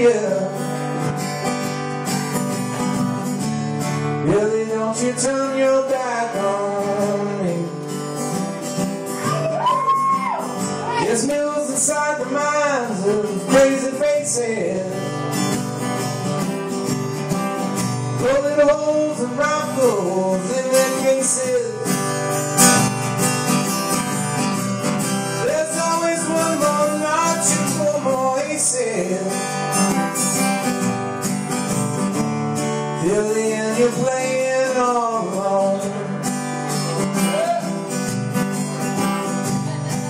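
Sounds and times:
man singing: 0.0 - 1.6, 3.9 - 9.4, 10.6 - 15.7, 18.0 - 22.5, 25.0 - 30.3, 32.6 - 40.0
acoustic guitar strummed and picked: 0.0 - 40.0.

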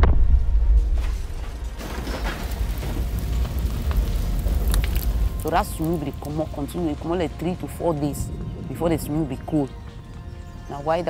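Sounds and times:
explosion low rumble: 0.0 - 10.1
fire crackling: 0.0 - 11.0.

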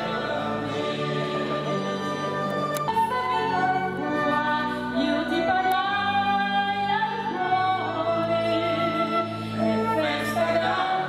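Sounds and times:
woman singing into a microphone: 2.9 - 11.0.

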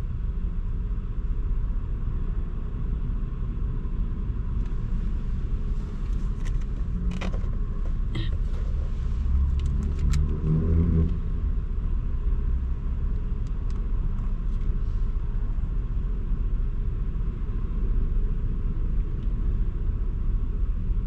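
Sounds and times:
car engine idling: 3.8 - 10.2.

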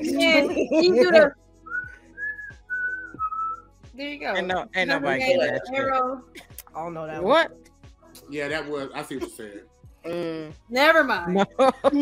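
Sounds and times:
person whistling short notes: 1.6 - 3.6.

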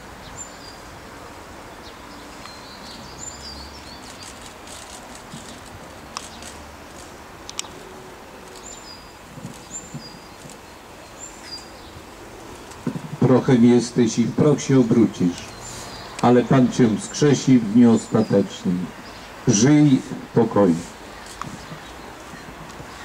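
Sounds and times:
outdoor background noise: 0.0 - 23.0
bird chirping: 1.7 - 20.0
sharp clicks: 4.0 - 7.8.

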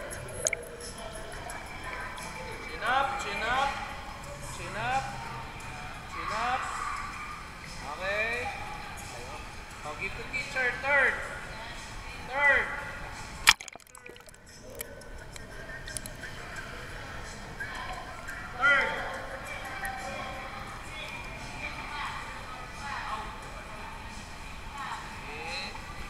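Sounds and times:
pool water sloshing: 13.5 - 15.0.

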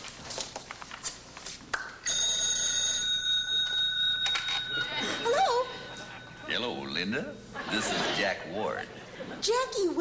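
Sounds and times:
telephone ringing: 2.1 - 7.0.

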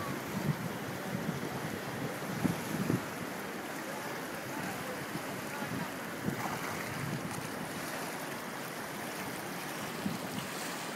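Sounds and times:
wind buffeting microphone: 0.0 - 3.4, 4.5 - 8.0, 9.6 - 10.8
white water rushing: 0.0 - 10.9.

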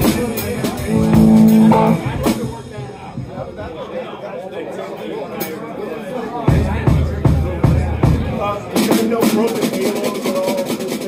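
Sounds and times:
live band chord: 0.0 - 2.9
crowd murmur: 0.0 - 11.0.

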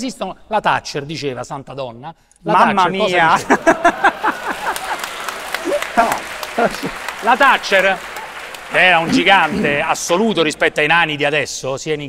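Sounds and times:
audience laughter: 3.1 - 7.5
audience applauding: 3.2 - 10.8.

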